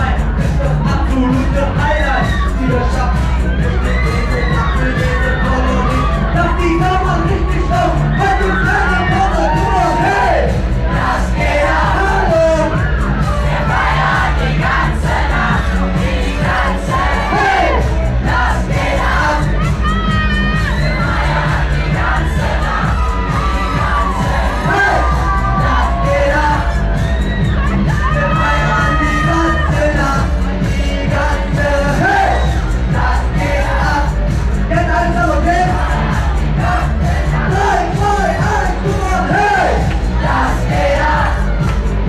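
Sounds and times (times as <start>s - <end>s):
crowd noise: 0.0s - 42.0s
pop music over pa: 0.0s - 42.0s
pounding bass: 0.0s - 42.0s.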